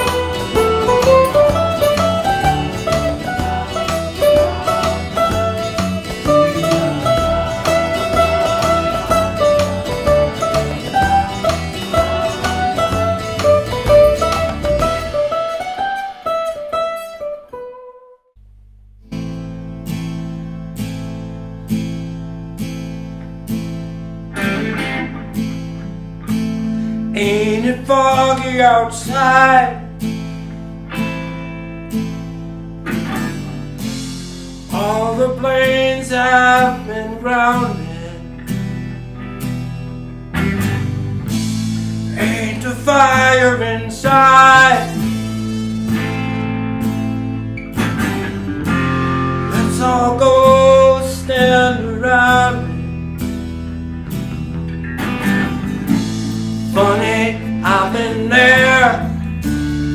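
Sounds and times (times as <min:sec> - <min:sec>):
bass and regular beat: 0:00.0 - 0:16.9, 0:30.0 - 0:35.0, 0:38.5 - 0:50.7, 0:52.7 - 0:59.9
strummed acoustic guitar: 0:00.0 - 0:18.0, 0:19.0 - 0:59.9
electric guitar: 0:00.0 - 0:18.1, 0:19.1 - 0:59.9.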